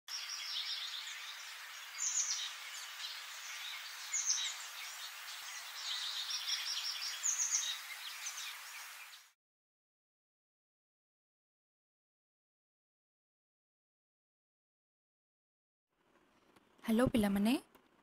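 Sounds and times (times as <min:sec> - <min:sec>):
birds chirping: 0:00.1 - 0:09.4
steady background hiss: 0:00.2 - 0:09.3.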